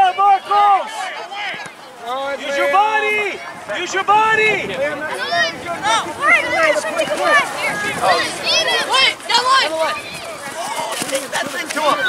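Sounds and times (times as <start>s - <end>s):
many voices shouting: 0.0s - 12.0s.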